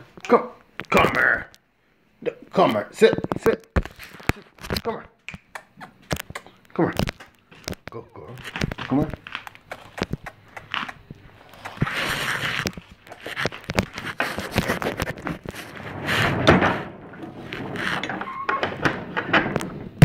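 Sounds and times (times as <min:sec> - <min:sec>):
scraping: 0:06.1 - 0:20.0.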